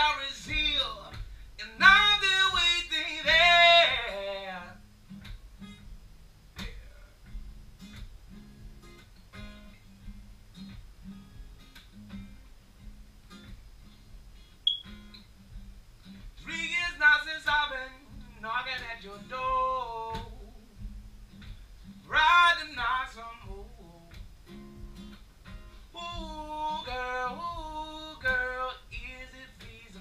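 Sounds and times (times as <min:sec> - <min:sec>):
man singing: 0:00.0 - 0:04.8, 0:16.4 - 0:20.8, 0:22.0 - 0:24.2, 0:25.9 - 0:30.0
acoustic guitar strumming: 0:00.0 - 0:30.0.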